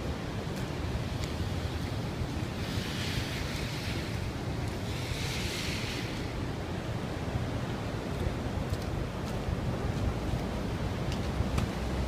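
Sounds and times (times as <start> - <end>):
wind on microphone: 0.0 - 12.0
hiss: 2.4 - 6.7.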